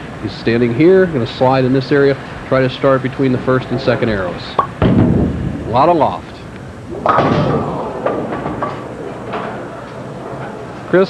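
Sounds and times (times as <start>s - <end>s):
bowling pins clattering: 3.6s - 11.0s
bowling pin impact crack: 6.6s - 10.0s.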